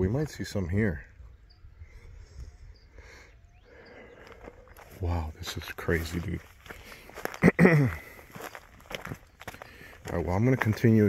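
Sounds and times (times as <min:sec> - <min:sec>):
wind rumble on microphone: 0:01.1 - 0:03.6
footsteps on rocky ground: 0:03.9 - 0:11.0.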